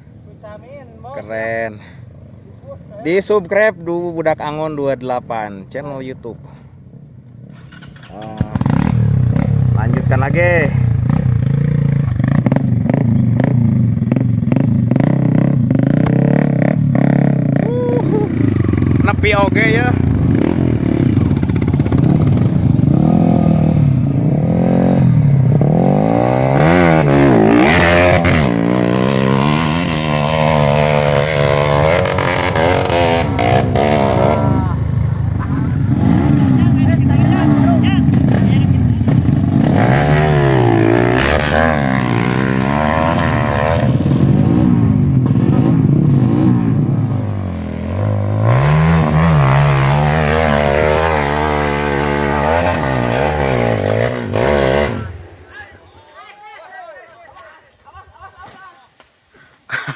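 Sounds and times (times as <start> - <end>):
motorcycle engines revving: 0.0 - 55.8.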